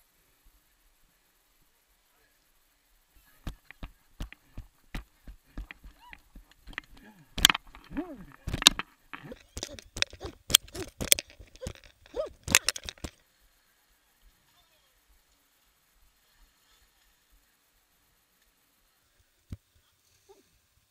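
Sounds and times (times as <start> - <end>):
running footfalls: 3.4 - 13.1
sharp knocks: 3.4 - 13.1.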